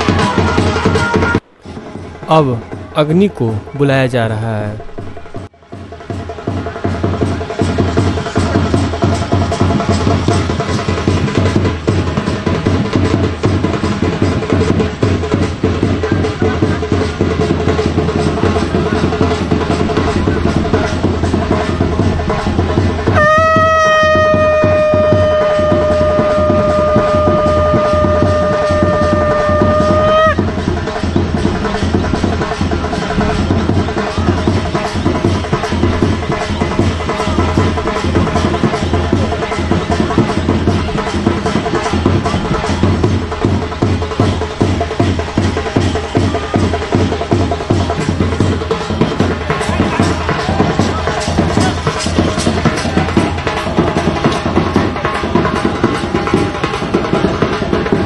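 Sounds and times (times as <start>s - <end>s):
drums beating fast: 0.0s - 58.0s
conch shell blown: 23.1s - 30.6s.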